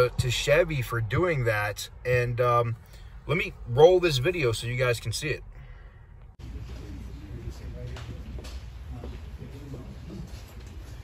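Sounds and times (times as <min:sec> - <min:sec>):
faint murmuring voices: 0:06.4 - 0:11.0.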